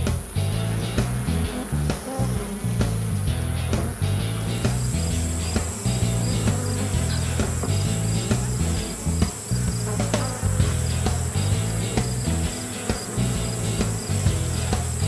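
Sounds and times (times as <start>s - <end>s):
background music with bassline: 0.0s - 15.0s
high cricket-like chirring: 0.0s - 15.0s.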